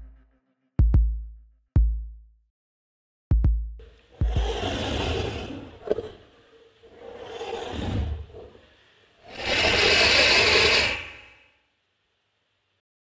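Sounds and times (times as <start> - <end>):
harsh scraping noise surges: 4.2 - 11.4.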